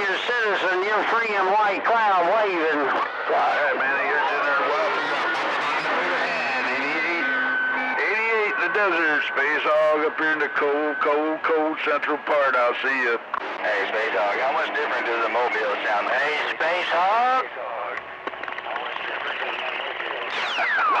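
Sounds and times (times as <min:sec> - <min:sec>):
indistinct radio voices: 0:00.0 - 0:21.0
radio static hiss: 0:00.0 - 0:21.0.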